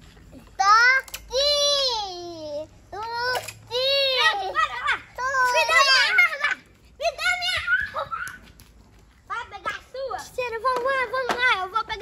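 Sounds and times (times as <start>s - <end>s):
children shouting and laughing: 0.4s - 12.0s.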